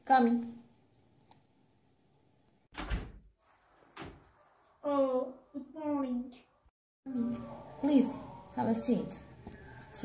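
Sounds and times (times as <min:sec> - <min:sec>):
door handle and door opening: 0:02.7 - 0:03.2.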